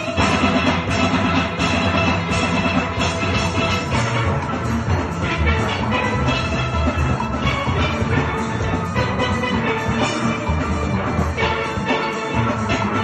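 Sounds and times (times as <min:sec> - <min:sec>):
steel band playing: 0:00.0 - 0:13.0.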